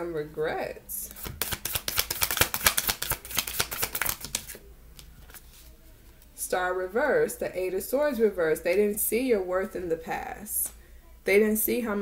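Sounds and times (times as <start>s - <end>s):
cards being shuffled: 1.1s - 6.3s.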